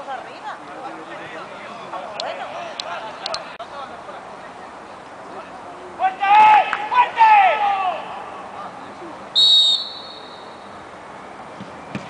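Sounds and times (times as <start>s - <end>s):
players shouting: 5.9s - 10.5s
referee's whistle blast: 9.4s - 10.6s.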